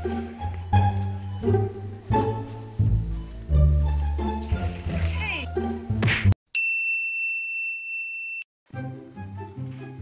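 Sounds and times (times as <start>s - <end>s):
background music: 0.0s - 6.3s, 8.7s - 10.0s
high bell-like ding: 6.5s - 8.5s.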